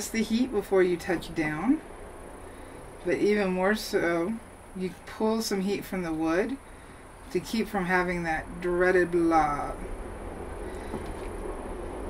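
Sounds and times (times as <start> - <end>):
low rumble with faint hiss: 0.0 - 12.0.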